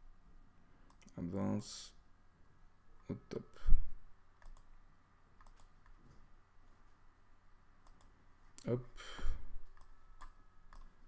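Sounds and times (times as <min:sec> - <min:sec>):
computer mouse clicking: 0:04.4 - 0:04.7, 0:05.4 - 0:06.0, 0:07.8 - 0:08.1, 0:09.7 - 0:11.0.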